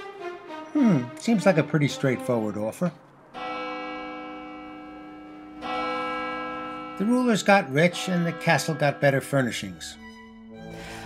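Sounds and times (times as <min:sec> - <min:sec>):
clock bell striking: 0:03.4 - 0:10.4.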